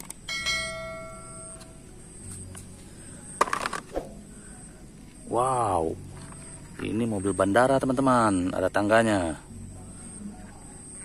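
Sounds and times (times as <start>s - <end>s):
bell-like ding: 0.3s - 1.7s.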